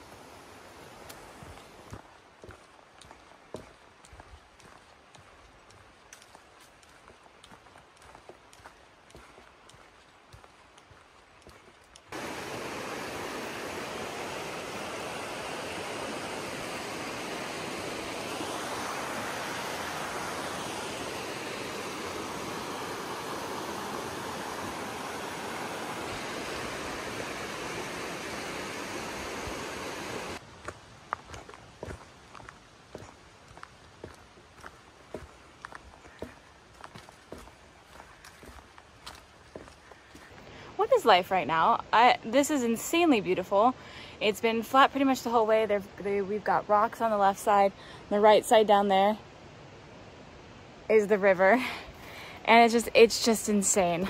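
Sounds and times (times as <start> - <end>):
footsteps on dirt trail: 1.0 - 12.2, 30.4 - 40.6
river water rushing over rapids: 12.0 - 30.4.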